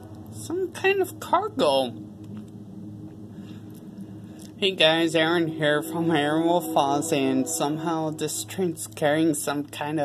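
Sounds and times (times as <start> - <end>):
distant freight train rumbling: 0.0 - 10.0.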